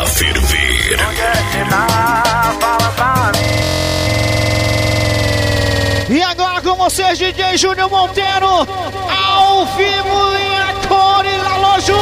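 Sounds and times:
buzzing synthesizer tone: 0:00.0 - 0:12.0.

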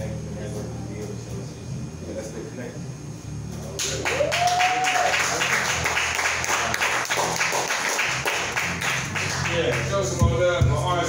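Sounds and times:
audience applauding: 0:03.8 - 0:10.0
person whooping: 0:04.0 - 0:05.4.

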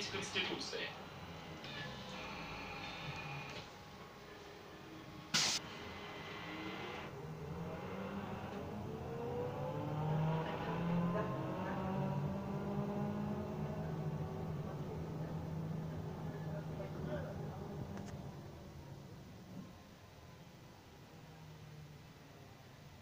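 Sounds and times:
bus motor whining: 0:00.0 - 0:20.0
bus road and cabin noise: 0:00.0 - 0:23.0
sharp air hiss: 0:05.3 - 0:05.7.

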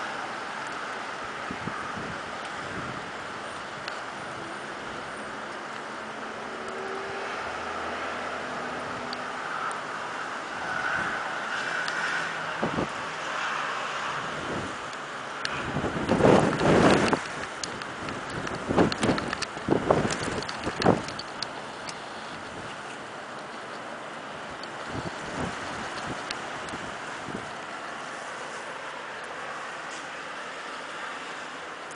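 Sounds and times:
wind buffeting microphone: 0:01.2 - 0:05.2, 0:10.6 - 0:22.9, 0:24.4 - 0:28.5.

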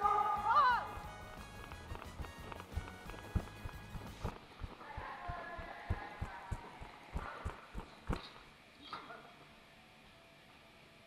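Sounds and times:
footsteps low thumps: 0:00.7 - 0:08.5.

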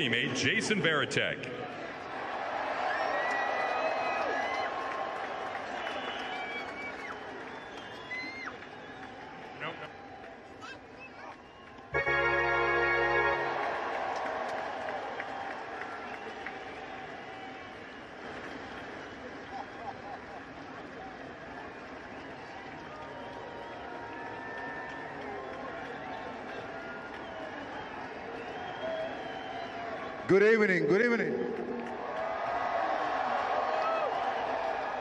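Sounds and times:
crowd cheering and applauding: 0:01.6 - 0:35.0.

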